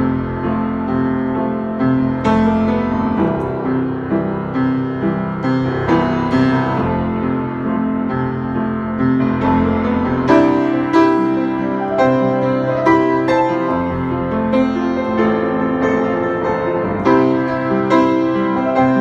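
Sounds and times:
upright piano playing: 0.0s - 19.0s.

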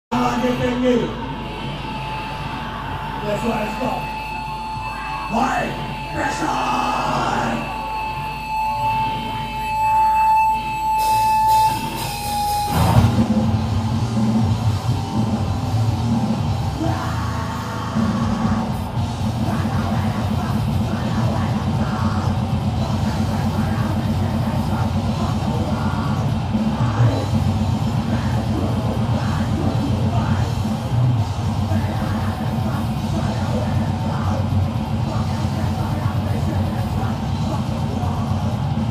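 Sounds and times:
distorted guitars: 0.1s - 38.9s
shouted vocals: 4.9s - 7.7s.

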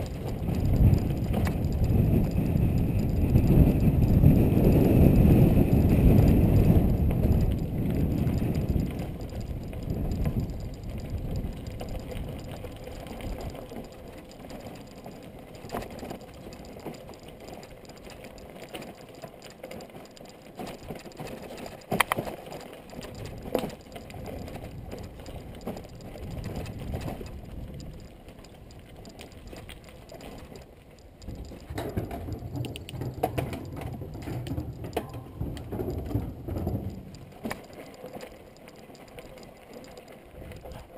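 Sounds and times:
bike rattling: 0.0s - 40.9s.

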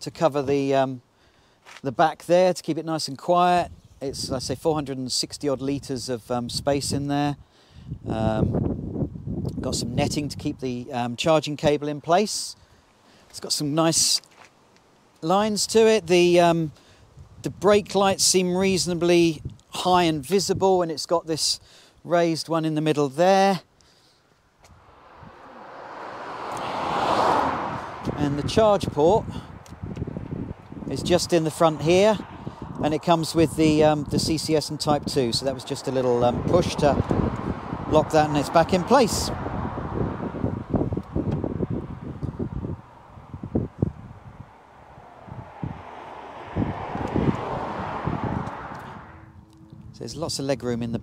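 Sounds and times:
wind buffeting microphone: 5.5s - 10.9s, 17.1s - 20.8s, 24.6s - 51.0s
road vehicle approaching: 24.4s - 51.0s.

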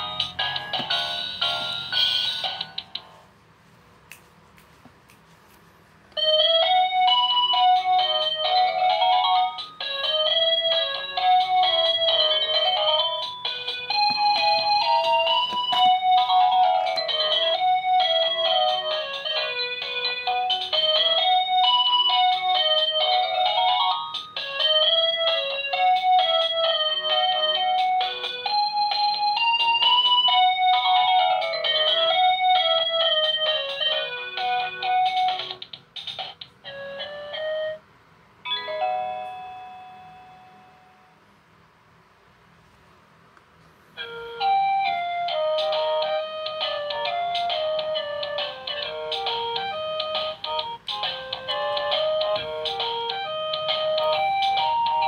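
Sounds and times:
toy playing beeping melody: 0.0s - 3.1s, 6.2s - 35.7s, 36.6s - 37.8s, 44.0s - 55.0s.

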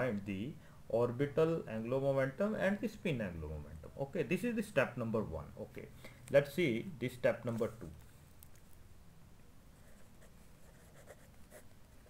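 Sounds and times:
pen scratching on paper: 9.8s - 12.0s.

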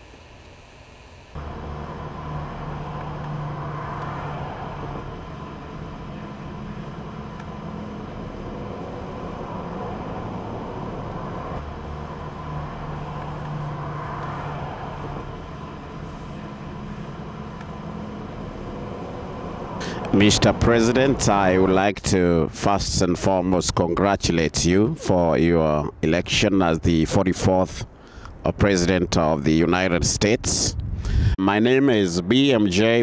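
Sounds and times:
faint hum: 0.0s - 33.0s
low engine drone: 0.0s - 33.0s
vehicle road noise rush: 1.3s - 24.8s.

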